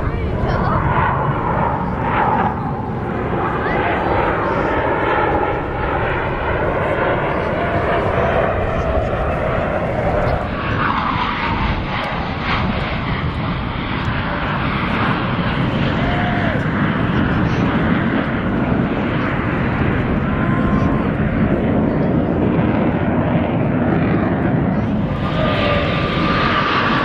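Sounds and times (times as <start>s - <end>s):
jet engines flying overhead: 0.0s - 27.0s.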